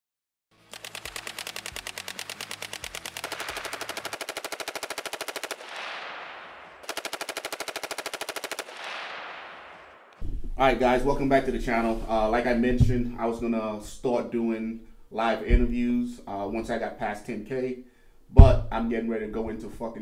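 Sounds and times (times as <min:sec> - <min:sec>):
automatic gunfire bursts: 0:00.6 - 0:10.2.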